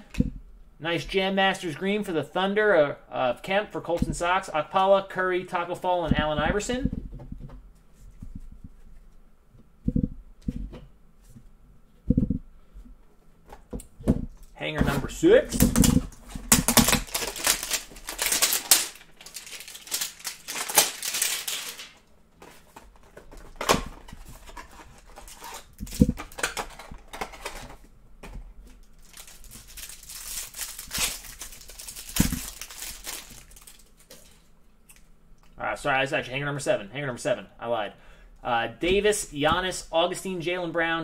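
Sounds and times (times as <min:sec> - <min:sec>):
plastic wrap crinkling: 0:15.3 - 0:27.8, 0:28.6 - 0:34.5.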